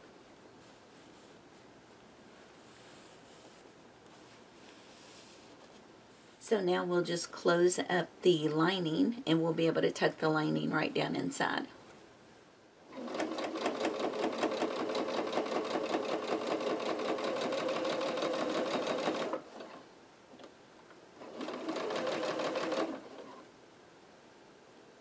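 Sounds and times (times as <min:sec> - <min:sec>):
sewing machine stitching: 0:12.9 - 0:19.8, 0:21.2 - 0:23.5.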